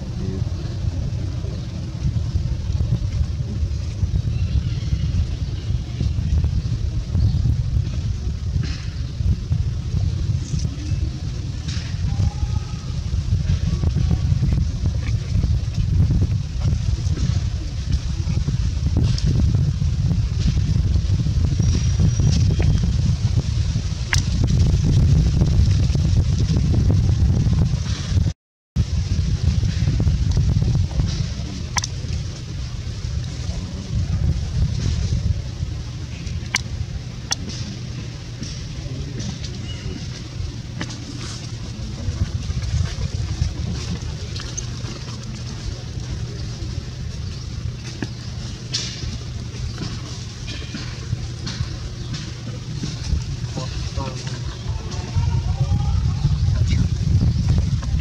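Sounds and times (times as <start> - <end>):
low rumble outdoors: 0.0 - 58.0.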